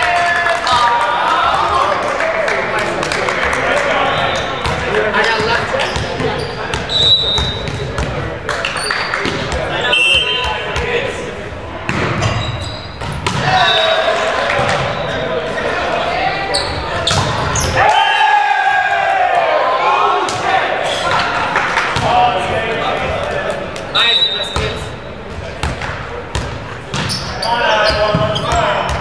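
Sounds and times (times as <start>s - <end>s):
players calling out: 0.0s - 29.0s
ball bounced and struck: 5.9s - 8.2s, 11.8s - 13.6s, 17.1s - 17.5s, 25.6s - 27.2s, 27.9s - 29.0s.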